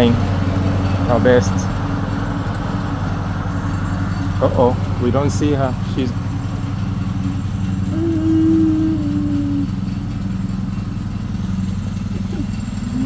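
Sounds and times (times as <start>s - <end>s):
lawn mower engine running: 0.0s - 13.0s
high held tone: 7.9s - 10.6s.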